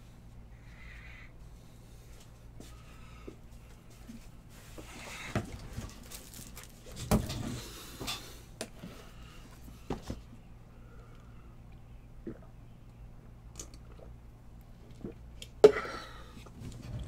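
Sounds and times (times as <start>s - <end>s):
steady low hum: 0.0s - 17.0s
rustling: 4.1s - 7.1s.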